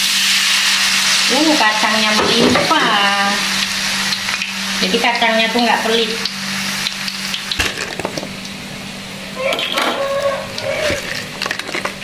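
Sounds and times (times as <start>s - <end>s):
hot oil sizzling: 0.0s - 12.0s.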